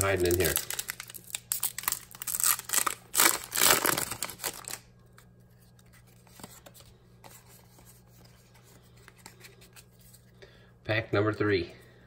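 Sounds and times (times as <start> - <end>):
foil wrapper tearing and crinkling: 0.0 - 4.9.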